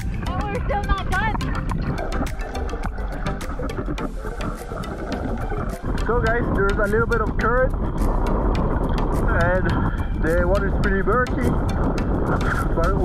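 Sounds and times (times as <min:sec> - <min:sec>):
sea water sloshing and splashing: 0:00.0 - 0:13.0
wind rumbling on microphone: 0:00.0 - 0:13.0.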